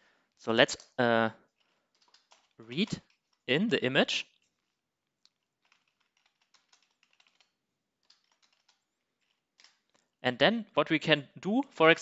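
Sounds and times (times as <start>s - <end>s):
faint keyboard typing: 0.3s - 3.6s, 4.3s - 10.2s.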